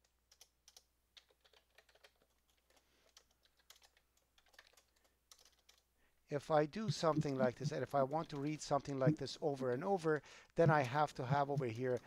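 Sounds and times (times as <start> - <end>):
computer keyboard typing: 0.0 - 5.9, 6.9 - 10.0, 10.6 - 12.0.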